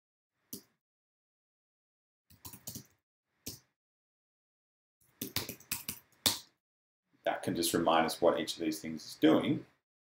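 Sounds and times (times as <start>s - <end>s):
computer keyboard keystrokes: 2.3s - 2.9s.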